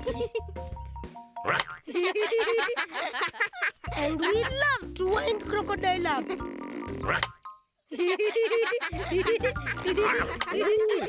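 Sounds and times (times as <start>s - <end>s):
bouncy plucky background music: 0.0s - 2.7s, 3.9s - 7.8s, 8.6s - 11.0s
springy boing: 6.3s - 7.6s.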